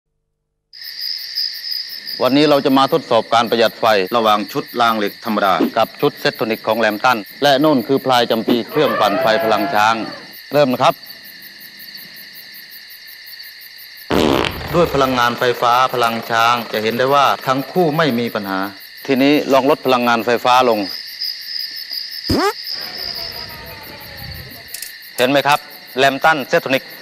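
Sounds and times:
crickets chirping: 0.8s - 27.0s.

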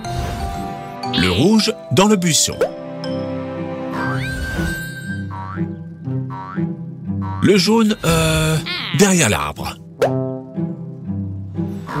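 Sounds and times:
cheerful background music: 0.0s - 12.0s.

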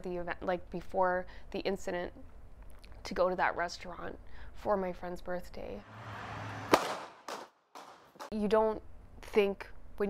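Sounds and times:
low traffic hum: 5.8s - 9.1s
gunshots: 6.0s - 8.3s.

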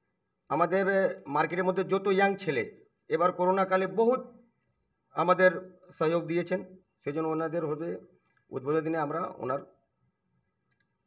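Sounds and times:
man speaking: 0.5s - 4.3s, 5.2s - 9.6s.

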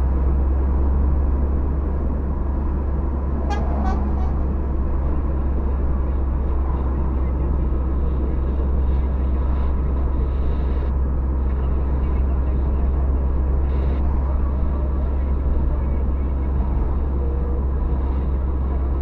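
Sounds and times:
car road and engine noise: 0.0s - 19.0s.

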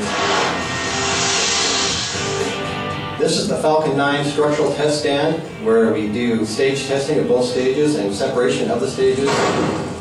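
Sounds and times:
rocket test firing rush: 0.0s - 2.5s
background music: 0.0s - 10.0s.

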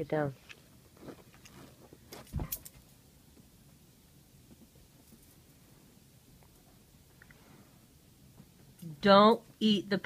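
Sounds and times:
dog landing thump: 2.3s - 2.7s.

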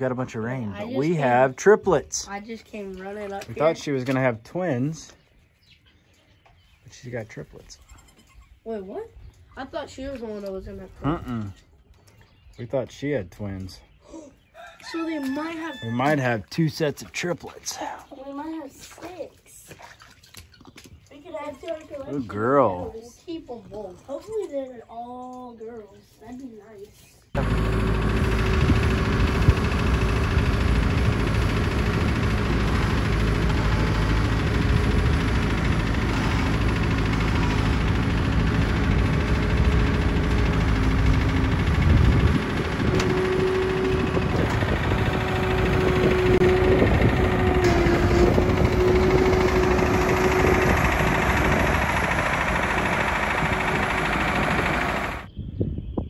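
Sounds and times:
diesel engine running: 27.4s - 55.3s
steady whine: 27.4s - 55.3s.

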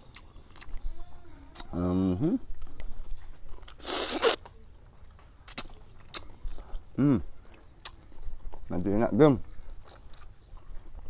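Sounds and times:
chewing clicks: 0.0s - 0.9s, 1.5s - 1.8s, 2.5s - 8.7s, 9.4s - 11.0s.

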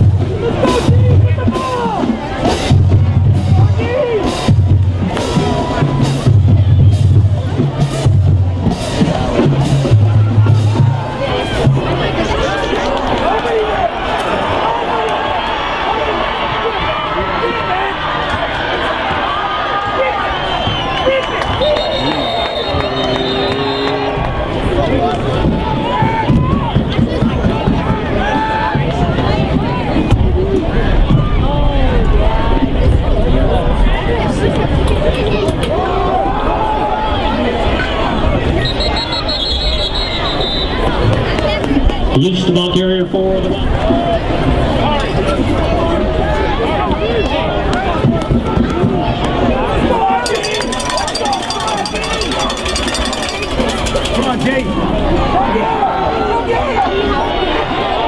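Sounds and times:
music with bass and drums: 0.0s - 12.0s
crowd cheering and chattering: 0.0s - 58.0s.

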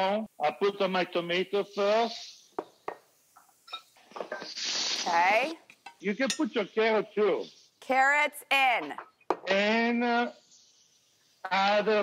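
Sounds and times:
tomatoes sizzling in hot pan: 0.0s - 8.0s.

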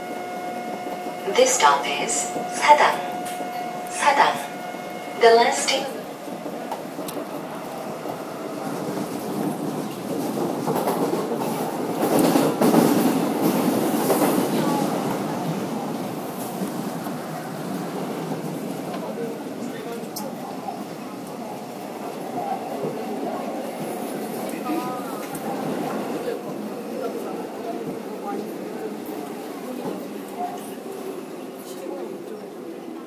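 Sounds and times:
subway train rumble: 0.0s - 33.0s.

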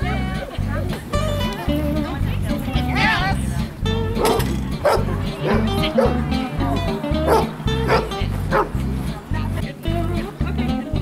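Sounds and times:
background music with steady beat: 0.0s - 11.0s
dog barking: 4.2s - 6.2s, 7.3s - 8.8s.

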